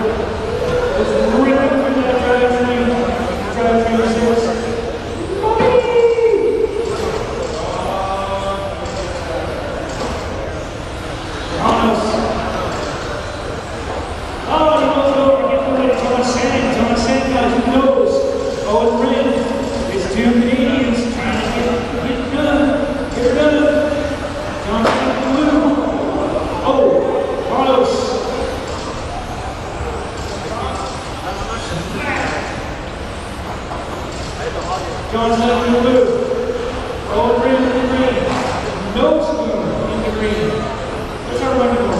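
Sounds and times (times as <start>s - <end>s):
announcer's amplified voice echoing: 0.0s - 9.0s, 11.5s - 12.8s, 14.4s - 28.7s, 30.3s - 32.8s, 34.3s - 41.9s.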